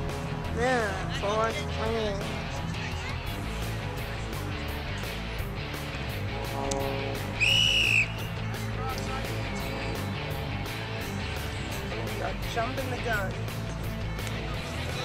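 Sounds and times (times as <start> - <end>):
music with steady beat: 0.0 - 15.0
referee's whistle blast: 7.4 - 8.4.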